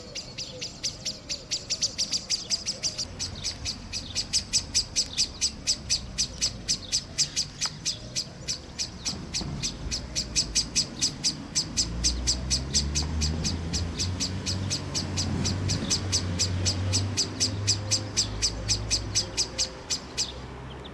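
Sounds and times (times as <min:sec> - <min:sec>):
blackbird chink alarm call: 0:00.0 - 0:20.4.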